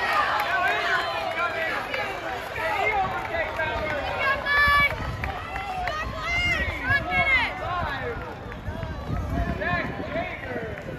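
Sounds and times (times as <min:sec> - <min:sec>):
people talking and calling out: 0:00.0 - 0:10.9.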